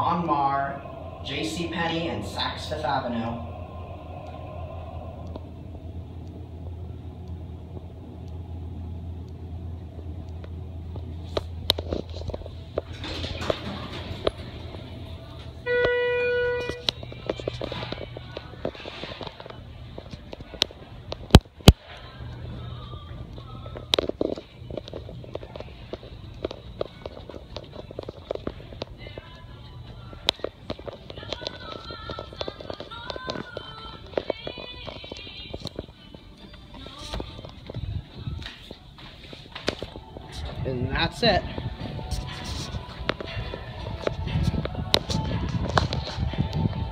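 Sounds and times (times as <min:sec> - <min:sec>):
background music in a shop: 0:00.0 - 0:46.9
low hum: 0:00.0 - 0:46.9.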